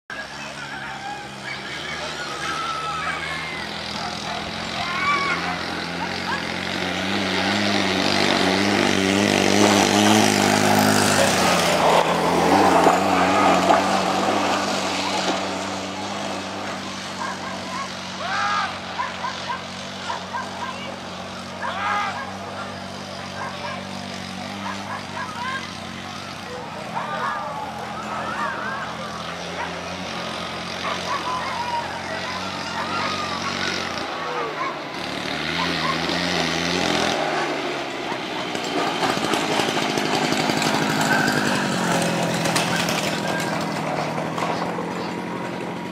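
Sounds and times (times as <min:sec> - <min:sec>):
spectators shouting: 0:00.1 - 0:45.9.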